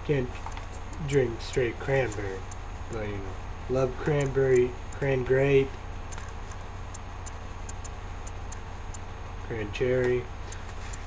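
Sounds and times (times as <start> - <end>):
steady low hum: 0.0 - 11.0
faint light ticks: 6.9 - 9.0.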